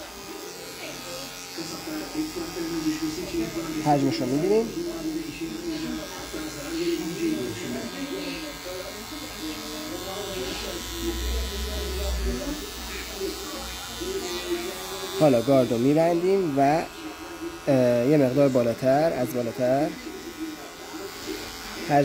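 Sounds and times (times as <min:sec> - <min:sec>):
hair clipper cutting stubble: 0:00.0 - 0:22.0
voices talking in background: 0:00.0 - 0:22.0.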